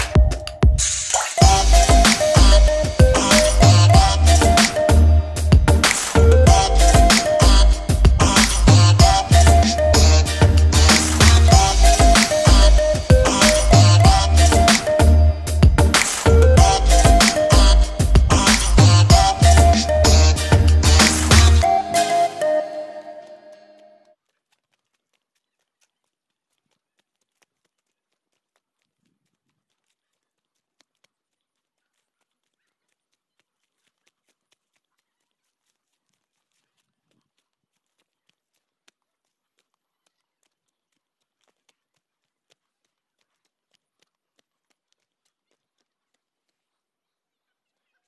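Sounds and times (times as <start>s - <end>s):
background music: 0.0s - 24.0s
faint irregular clicks: 5.8s - 8.7s, 23.5s - 48.0s
faint footsteps on dirt path: 23.2s - 48.0s.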